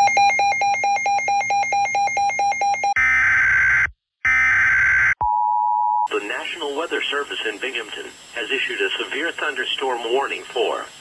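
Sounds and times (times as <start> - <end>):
rapid electronic beeping alarm: 0.0 - 5.2.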